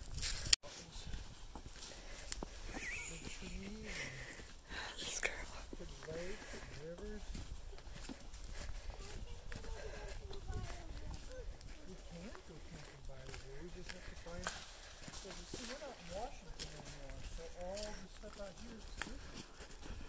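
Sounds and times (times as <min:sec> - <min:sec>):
footsteps on dirt and leaves: 0:00.0 - 0:20.0
children talking: 0:06.1 - 0:13.4.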